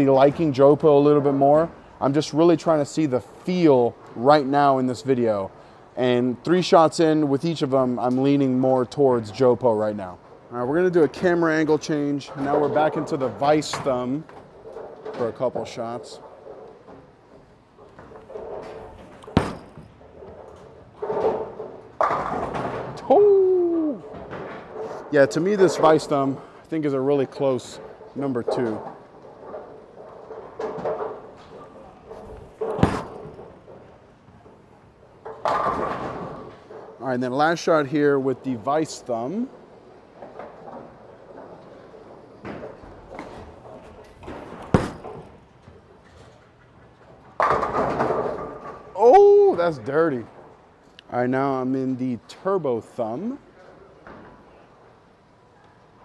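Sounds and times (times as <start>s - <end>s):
bowling ball rolling on wood: 12.3s - 23.0s, 27.6s - 37.0s
bowling pins crashing: 17.8s - 23.1s, 27.8s - 33.9s, 35.2s - 36.9s, 42.4s - 45.6s, 47.4s - 49.0s
pins crashing: 17.9s - 23.1s, 32.6s - 33.9s, 44.2s - 45.4s
bowling ball knocking on lane: 19.2s - 20.0s, 32.6s - 33.7s.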